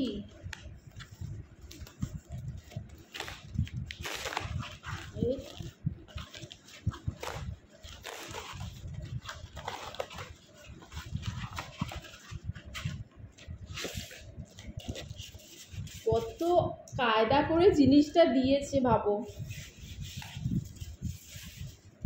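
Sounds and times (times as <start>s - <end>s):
cardboard flaps scraping and rustling: 0.8s - 16.5s, 19.2s - 22.0s
packing tape ripping: 3.0s - 5.4s.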